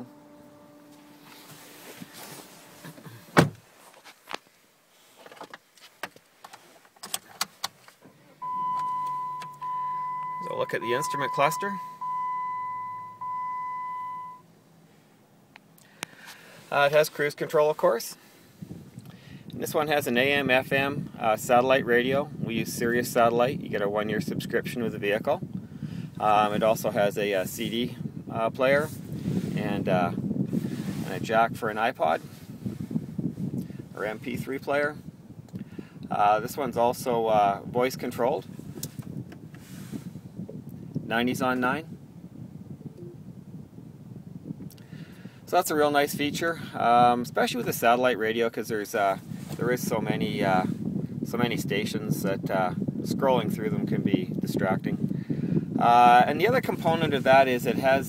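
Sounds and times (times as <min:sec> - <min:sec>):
low cabin rumble: 0:00.0 - 0:03.8, 0:08.1 - 0:44.5
car warning chime beeps: 0:08.4 - 0:14.5, 0:43.0 - 0:43.2.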